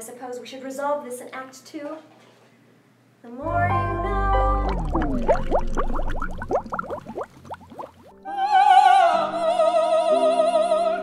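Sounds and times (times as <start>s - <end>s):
cartoon bubble bloops: 3.6s - 8.2s.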